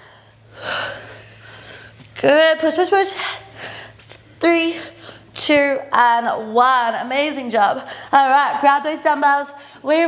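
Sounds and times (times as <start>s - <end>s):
woman breathing heavily: 0.0s - 2.1s, 3.1s - 5.4s, 7.7s - 8.2s, 9.5s - 9.9s.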